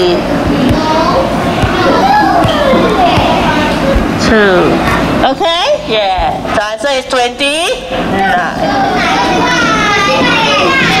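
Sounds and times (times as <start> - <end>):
children talking and playing: 0.0 - 11.0.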